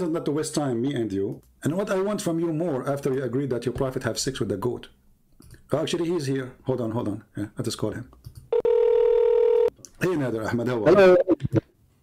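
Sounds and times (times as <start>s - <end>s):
electronic telephone tone: 8.5s - 9.7s.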